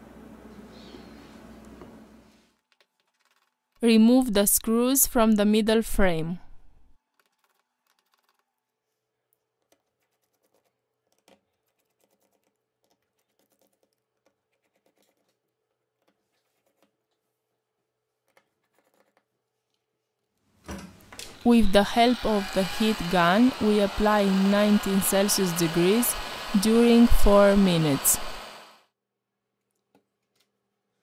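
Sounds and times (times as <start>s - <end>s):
faint steady hum: 21.0s - 28.8s.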